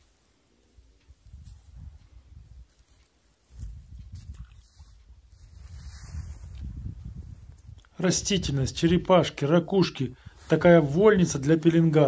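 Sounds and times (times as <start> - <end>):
wind buffeting microphone: 1.0 - 2.8, 3.5 - 9.1.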